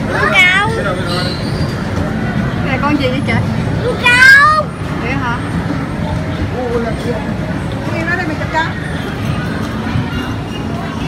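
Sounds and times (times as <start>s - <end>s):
murmur of crowd chatter: 0.0s - 11.0s.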